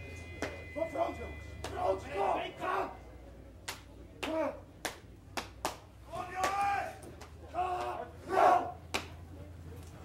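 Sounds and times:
men shouting calls: 0.7 - 3.1, 6.1 - 8.8
sharp slaps: 3.6 - 8.0, 8.9 - 9.2.

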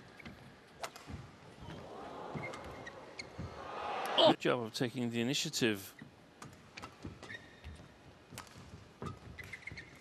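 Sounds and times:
shoes squeaking on court: 2.4 - 3.6, 5.9 - 10.0.

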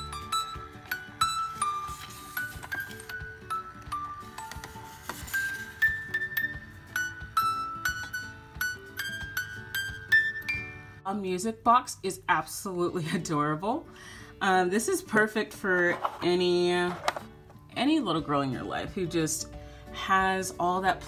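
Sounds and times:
music box tinkling melody: 5.2 - 10.8.

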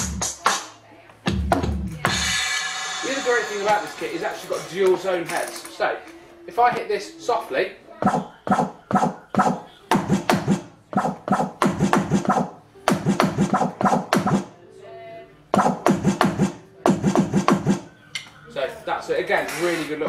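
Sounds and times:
electronic drum hits: 8.0 - 14.5, 15.6 - 17.9.

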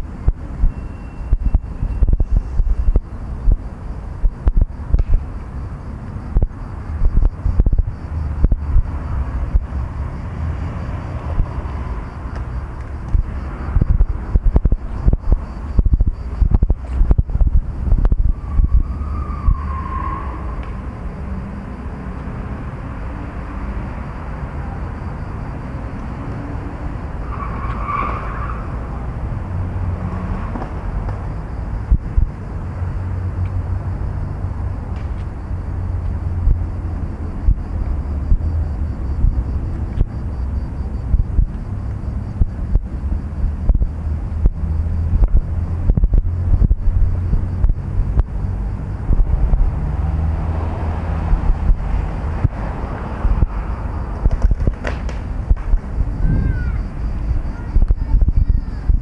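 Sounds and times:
wind buffeting microphone: 0.0 - 19.9, 30.8 - 59.0
street traffic: 0.0 - 59.0.

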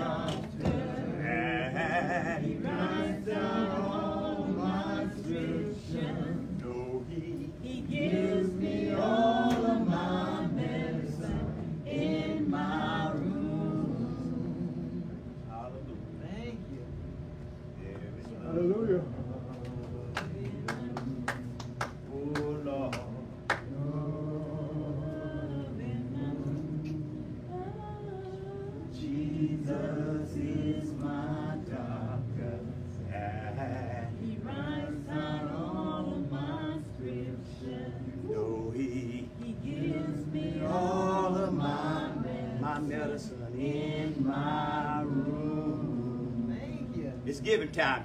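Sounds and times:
congregation singing a cappella: 0.0 - 15.5, 18.4 - 48.0.

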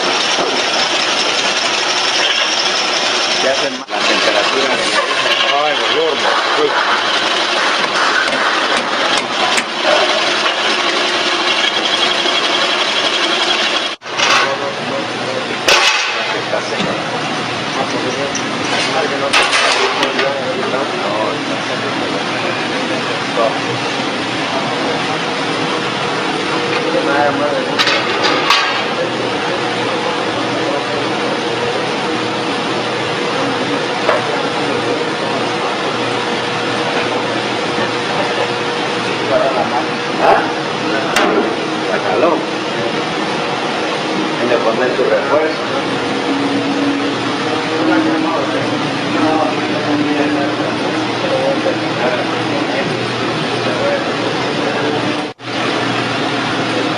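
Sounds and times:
hydraulic press running: 0.0 - 56.9
indistinct talk: 3.4 - 7.0, 14.2 - 55.4.

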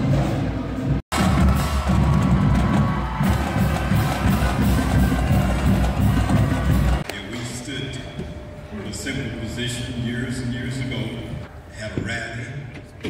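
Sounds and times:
marching drums beat: 1.1 - 7.1
pep band brass: 1.1 - 7.1.

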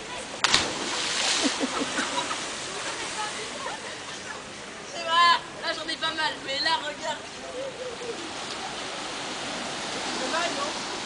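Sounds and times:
calm sea waves washing: 0.0 - 4.8, 8.0 - 11.0.

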